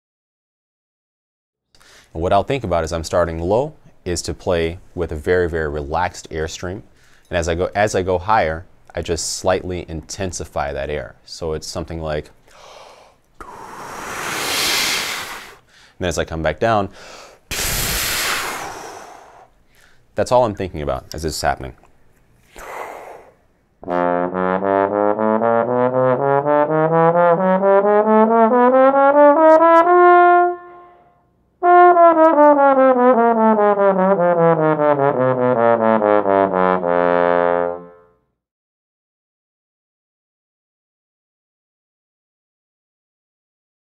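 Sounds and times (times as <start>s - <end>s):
person blowing air through lips: 12.5s - 15.9s, 17.0s - 19.6s, 22.4s - 23.5s
trombone playing slurred notes: 23.8s - 38.2s.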